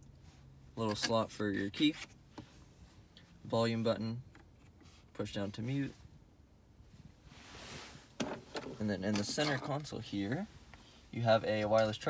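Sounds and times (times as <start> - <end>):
soft hiss: 1.8 - 12.0.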